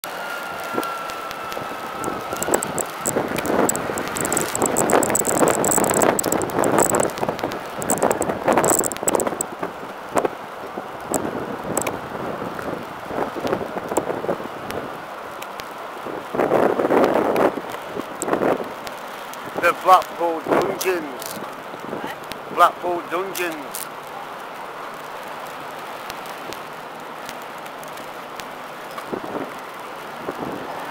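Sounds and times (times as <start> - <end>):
street noise: 0.0 - 30.9
wind on microphone: 0.6 - 15.0, 16.1 - 18.7, 19.4 - 22.6, 29.0 - 29.6, 30.2 - 30.9
sharp clicks: 2.4 - 9.4, 23.4 - 23.9.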